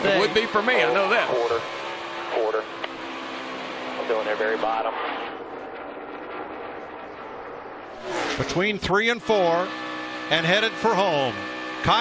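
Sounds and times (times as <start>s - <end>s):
race car engine at speed: 0.0s - 7.2s, 7.8s - 12.0s.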